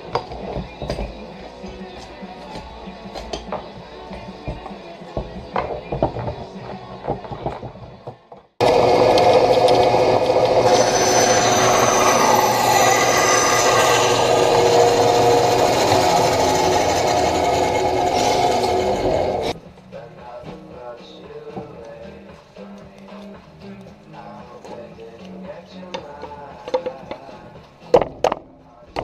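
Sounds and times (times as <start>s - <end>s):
bandsaw cutting wood: 8.6s - 19.6s.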